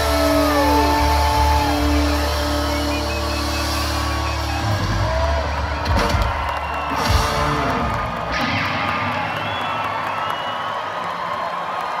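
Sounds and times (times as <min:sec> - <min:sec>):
live reggae band music: 0:00.0 - 0:10.1
crowd cheering and whistling: 0:00.0 - 0:12.0.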